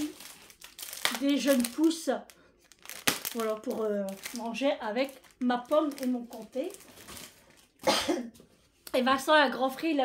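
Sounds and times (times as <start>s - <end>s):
woman coughing: 7.8s - 8.4s.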